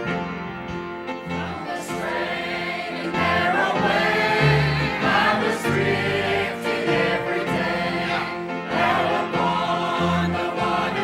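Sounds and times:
bass guitar: 0.0s - 1.6s
piano: 0.0s - 11.0s
choir singing a hymn: 1.2s - 11.0s.

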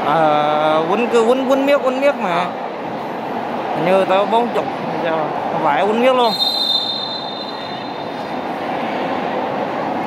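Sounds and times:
crowd noise in sports hall: 0.0s - 10.0s
referee's whistle blast: 6.2s - 8.2s.

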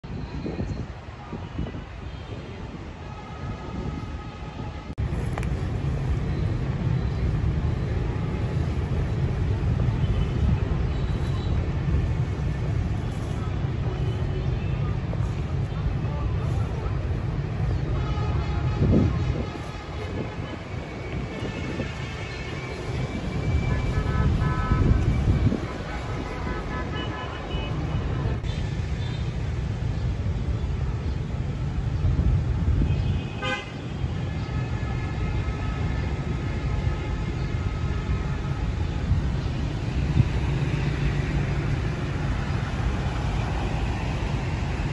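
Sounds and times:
distant road traffic rumble: 0.0s - 44.9s
car horn toot: 23.6s - 25.2s.

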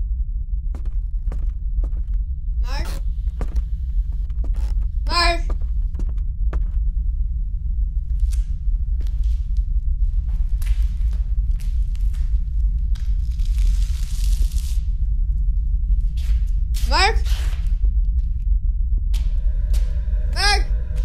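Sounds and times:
steady deep rumble: 0.0s - 21.0s.

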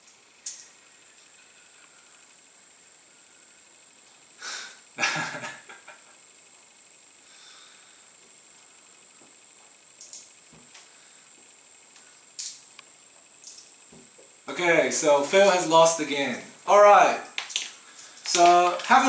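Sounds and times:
room tone hiss: 0.0s - 19.0s
coins clicking on table: 0.4s - 0.7s, 10.0s - 10.4s, 12.4s - 12.6s, 13.4s - 13.7s, 17.4s - 19.0s
short breathy laugh: 4.4s - 6.2s.

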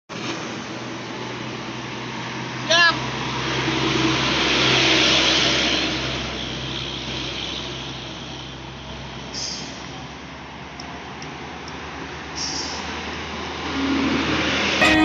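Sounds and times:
highway traffic passing: 0.1s - 15.0s
vehicle rushing past: 1.9s - 6.4s.

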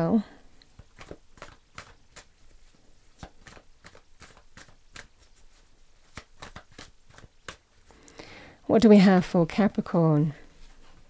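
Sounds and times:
cards being shuffled by hand: 0.6s - 8.1s.

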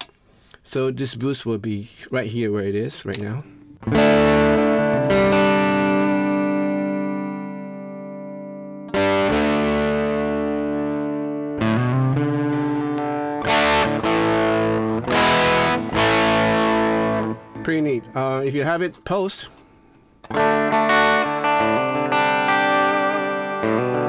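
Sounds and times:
overdriven electric guitar chords: 3.7s - 18.8s, 20.2s - 24.0s.

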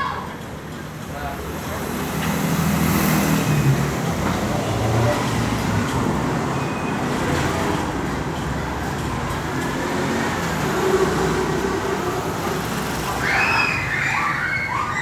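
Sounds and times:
vehicle engine rumbling: 0.2s - 13.3s.

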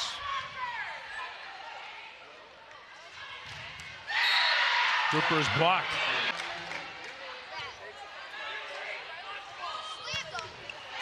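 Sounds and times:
crowd murmur in a gym: 0.0s - 11.0s.

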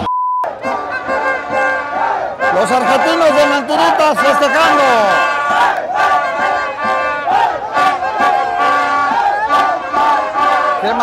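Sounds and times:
censor bleep: 0.0s - 0.5s
crowd of fans singing a chant: 0.5s - 11.0s.

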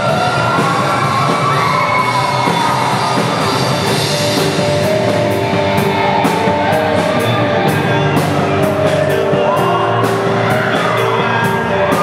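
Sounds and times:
drums: 0.0s - 12.0s
electric guitars: 0.0s - 12.0s
person singing: 4.2s - 12.0s.

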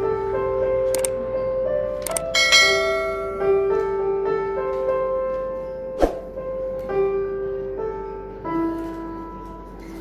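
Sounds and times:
electronic keyboard piano notes: 0.0s - 10.0s
bright bell ding: 2.3s - 3.4s.

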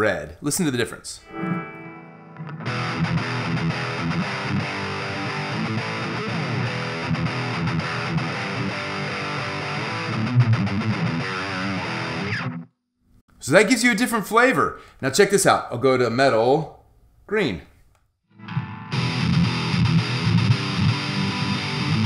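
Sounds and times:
distorted electric guitar riff: 1.2s - 12.7s, 18.5s - 22.0s.

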